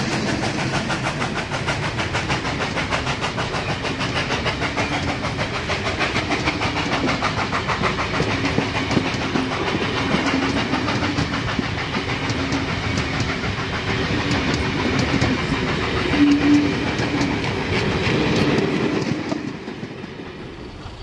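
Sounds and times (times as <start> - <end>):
train wheels clicking over rail joints: 0.0 - 21.0.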